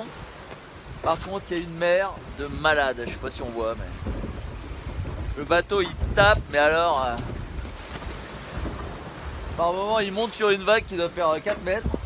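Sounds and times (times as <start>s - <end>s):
sea washing around a hull: 0.0s - 12.0s
wind buffeting microphone: 0.0s - 12.0s.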